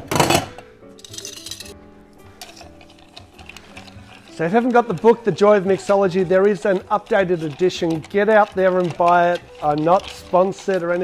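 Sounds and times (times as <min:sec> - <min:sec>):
background music: 0:00.0 - 0:11.0
ice cubes rattling in metal tin: 0:01.0 - 0:01.7, 0:02.4 - 0:11.0.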